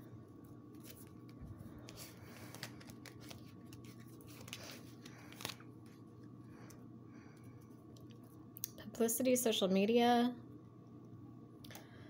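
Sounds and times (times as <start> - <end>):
low electrical hum: 0.0 - 12.0
cards rustling and clicking: 0.7 - 6.1.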